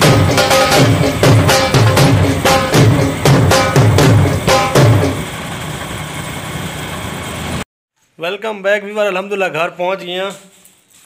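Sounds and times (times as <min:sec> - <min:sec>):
moving vehicle travel noise: 0:00.0 - 0:07.7.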